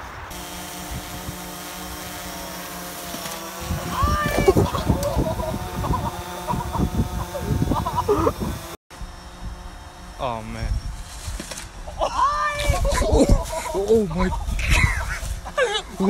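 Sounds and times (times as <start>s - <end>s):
drone propellers buzzing: 0.0s - 16.0s
people laughing and shouting: 3.9s - 8.4s, 11.9s - 16.0s.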